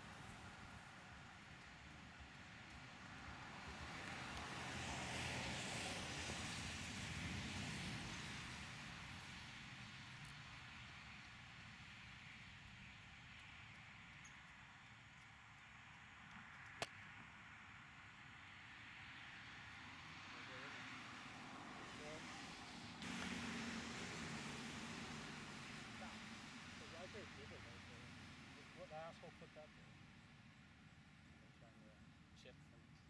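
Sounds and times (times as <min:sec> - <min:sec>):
steady rushing noise: 0:22.0 - 0:30.0.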